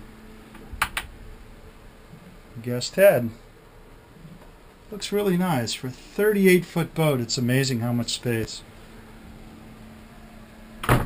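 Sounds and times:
faint constant tone: 0:00.0 - 0:11.0.

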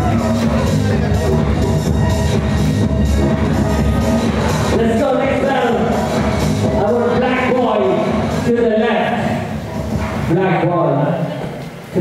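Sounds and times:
man talking over pa system: 0:04.7 - 0:09.6, 0:10.3 - 0:12.0.

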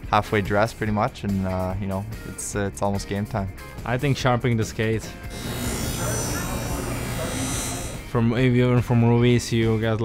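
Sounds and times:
grinding wheel on skate blade: 0:05.3 - 0:08.2
machine motor hum: 0:05.3 - 0:08.2.

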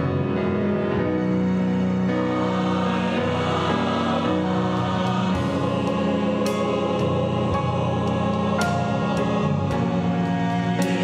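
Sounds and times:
church choir singing a hymn: 0:00.0 - 0:11.0
grand piano: 0:00.0 - 0:11.0
pipe organ: 0:00.0 - 0:11.0.

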